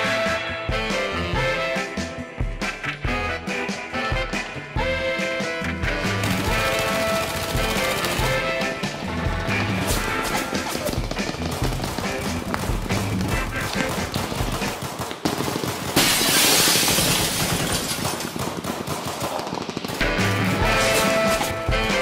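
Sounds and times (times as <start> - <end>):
trailer music: 0.0 - 14.7, 20.0 - 22.0
rapid machine-gun fire: 6.1 - 8.8, 9.4 - 21.4.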